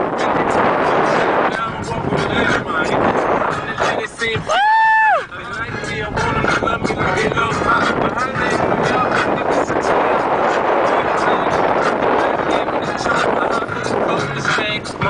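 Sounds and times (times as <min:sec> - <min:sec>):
song with vocals: 0:00.0 - 0:15.0
vehicle engine and tyre noise: 0:00.0 - 0:15.0.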